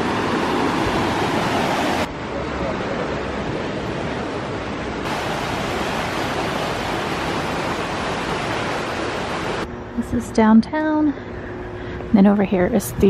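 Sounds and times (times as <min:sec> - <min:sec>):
creek water rushing: 0:00.0 - 0:09.7.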